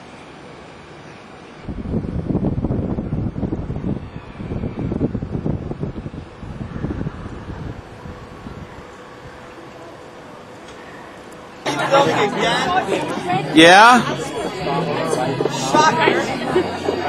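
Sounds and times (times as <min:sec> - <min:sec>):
wind buffeting microphone: 0:01.6 - 0:11.5.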